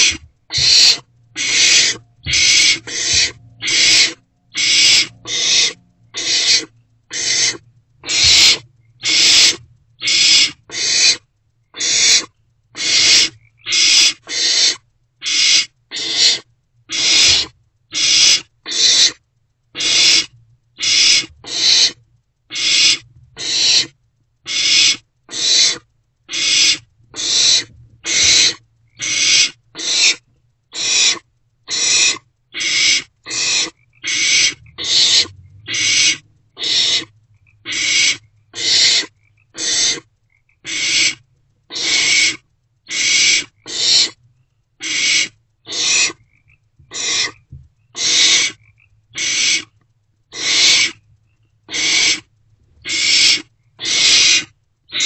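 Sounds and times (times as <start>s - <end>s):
owlets hissing: 0.0s - 11.2s.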